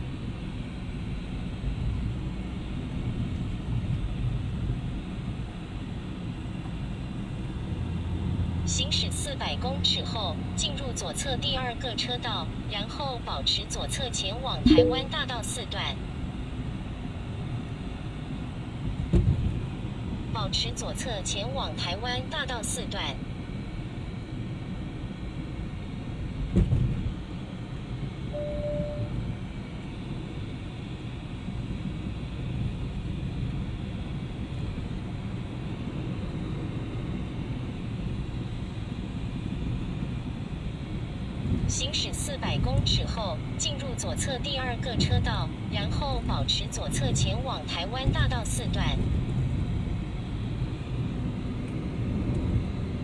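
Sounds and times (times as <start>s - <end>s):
car road and engine rumble: 0.0s - 53.0s
short beep: 14.6s - 15.1s, 28.3s - 29.1s.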